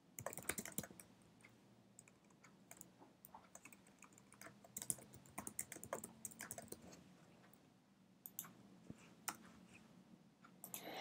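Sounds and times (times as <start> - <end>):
faint keyboard typing: 0.0 - 7.6, 8.2 - 9.9, 10.5 - 11.0.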